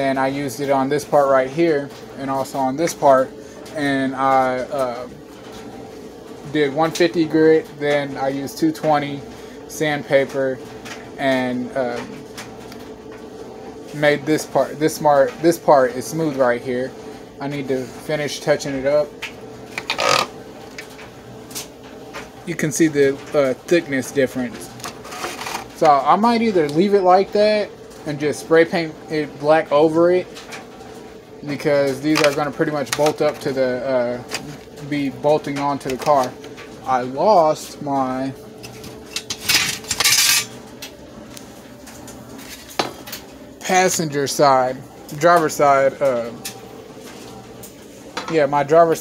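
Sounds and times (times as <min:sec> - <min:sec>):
plastic scraping on workbench: 0:24.8 - 0:25.7.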